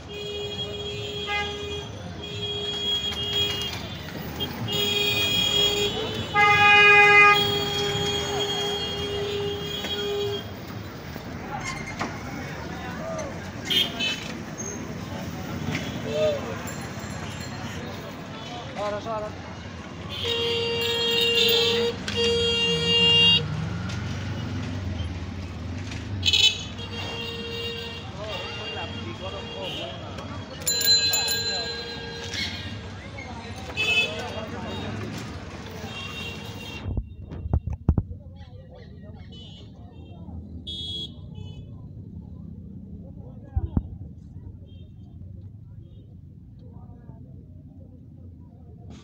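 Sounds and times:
vehicle horns blasting: 0.0 - 10.8, 13.6 - 14.4, 20.0 - 23.6, 26.2 - 33.0, 33.6 - 35.2, 35.8 - 37.2, 39.3 - 41.7
street traffic: 0.0 - 49.0
loud horn honking: 0.1 - 10.6.

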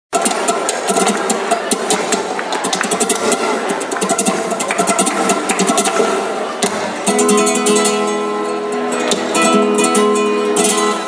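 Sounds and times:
flamenco guitar strumming: 0.1 - 11.0
hand clapping: 0.2 - 7.2.

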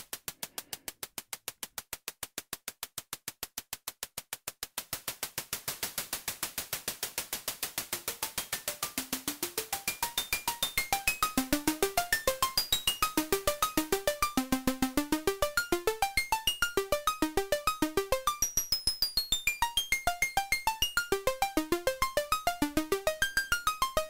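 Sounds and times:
rapid noise bursts: 3.5 - 10.2.

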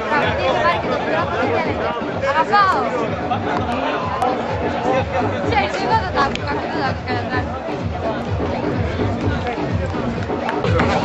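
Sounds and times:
background music with low beat: 0.0 - 11.0.

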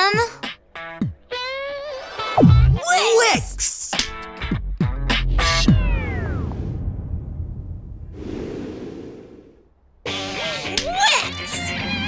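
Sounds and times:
downward sweeping sound effect: 5.3 - 8.2
whooshing: 5.3 - 9.8.

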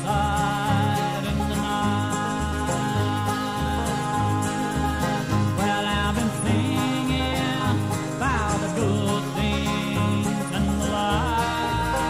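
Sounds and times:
string band playing country music: 0.0 - 12.0.

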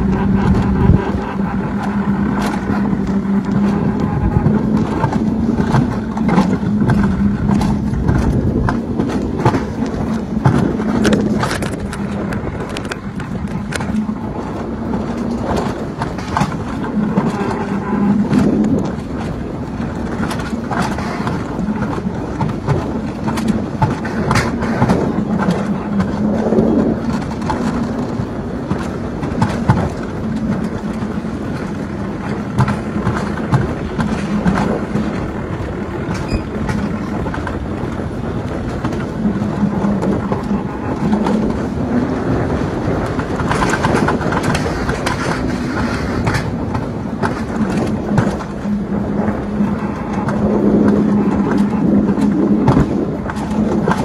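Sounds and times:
rattling clicks and knocks: 0.0 - 54.0
sled wheels rolling on rail: 0.0 - 54.0.

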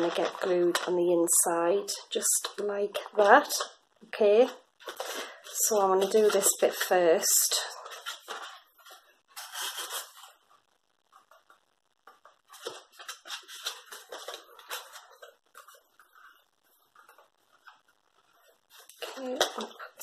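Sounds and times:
cardstock rustling and scraping: 4.4 - 7.0, 7.7 - 20.0.

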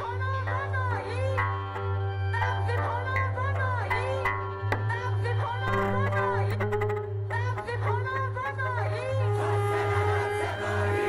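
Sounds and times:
low synthesizer drone: 0.0 - 11.0.

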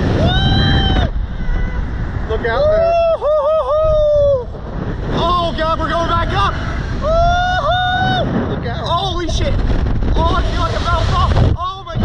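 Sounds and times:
riders shouting and whooping: 0.0 - 9.1
wind rushing over microphone: 0.0 - 12.0.

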